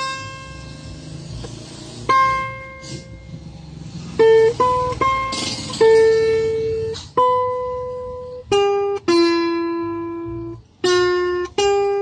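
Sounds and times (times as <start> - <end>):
acoustic guitar notes plucked: 0.0 - 12.0.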